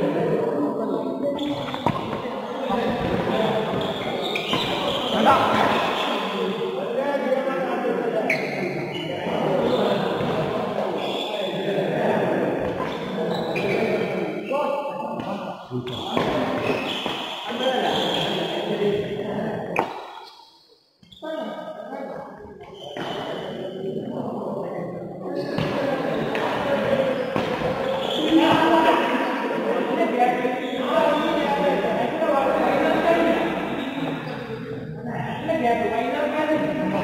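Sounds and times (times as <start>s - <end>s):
voices: 0.0s - 20.3s, 21.0s - 37.0s.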